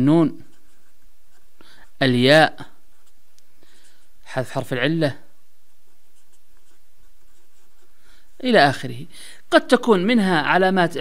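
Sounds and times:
marker scratching on paper: 0.0s - 8.8s.

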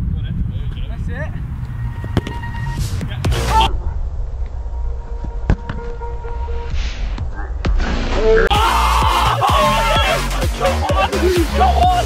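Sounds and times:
wind rumble on microphone: 0.0s - 7.4s
repeated steady music notes: 8.5s - 12.0s.

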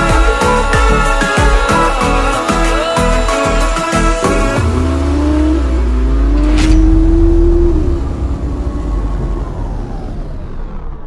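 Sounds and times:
motorboat engine rumbling: 4.6s - 11.0s.

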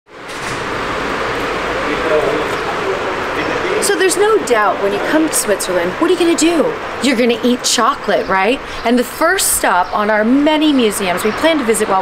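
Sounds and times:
street ambience rushing noise: 0.1s - 12.0s.

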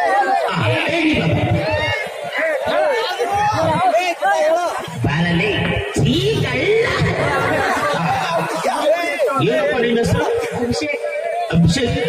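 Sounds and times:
men chattering: 0.0s - 12.0s
man speaking into a microphone: 0.2s - 12.0s.

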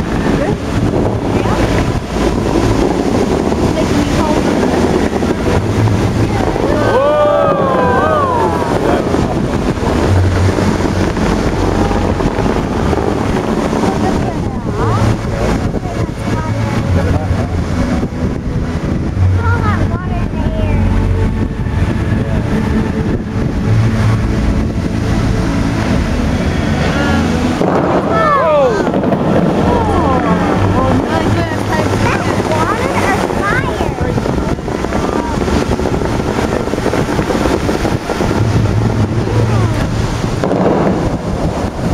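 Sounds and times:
crowd voices: 0.0s - 41.9s
fountain water jets rushing: 0.0s - 41.9s
onlookers chattering: 0.0s - 41.9s
wind buffeting microphone: 0.0s - 41.9s.

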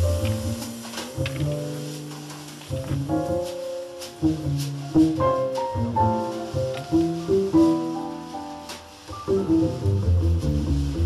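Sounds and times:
double bass: 0.0s - 11.0s
drum kit: 0.0s - 11.0s
grand piano: 0.0s - 11.0s.

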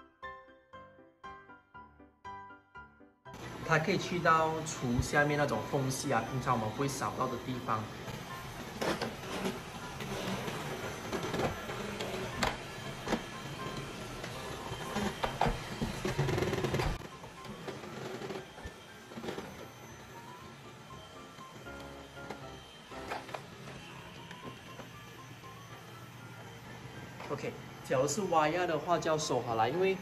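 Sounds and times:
background music: 0.0s - 30.0s
robot vacuum motor hum: 3.4s - 30.0s.

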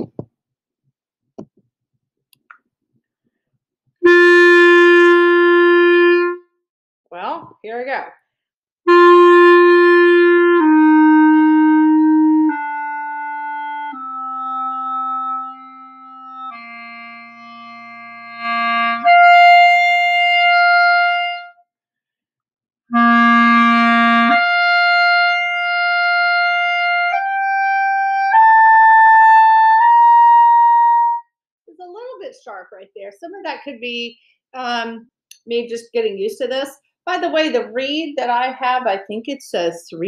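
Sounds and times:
clarinet long tones: 4.0s - 6.4s, 8.9s - 21.6s, 22.9s - 31.2s.

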